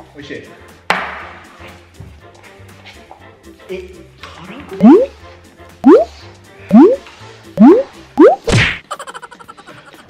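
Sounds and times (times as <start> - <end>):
falling swish and whack: 7.6 - 8.8.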